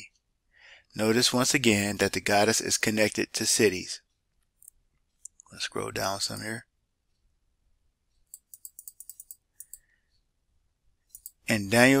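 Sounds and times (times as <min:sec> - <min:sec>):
mouse scroll wheel ticking: 0:08.1 - 0:10.0, 0:11.1 - 0:11.4.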